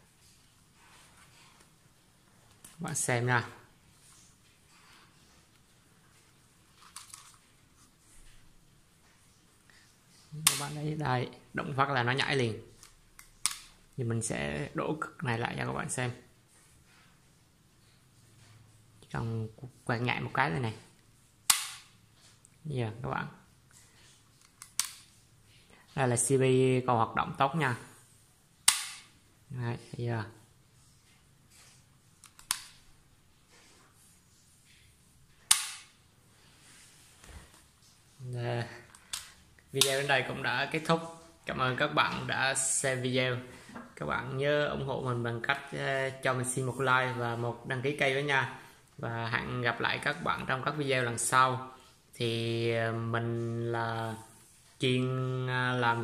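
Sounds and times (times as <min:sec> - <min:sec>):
sharp switch clicks: 0:21.5 - 0:21.8, 0:28.7 - 0:29.1, 0:35.5 - 0:35.9
circuit breaker snapping: 0:21.5 - 0:21.9, 0:28.7 - 0:29.1, 0:35.5 - 0:35.9
circuit breaker clicking: 0:28.7 - 0:29.0.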